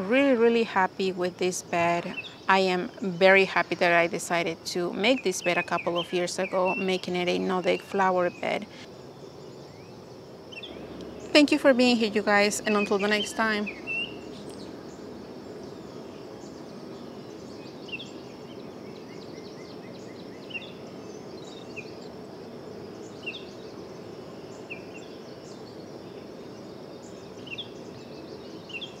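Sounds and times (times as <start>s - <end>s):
small birds chirping: 0.0s - 29.0s
steady background noise: 0.0s - 29.0s.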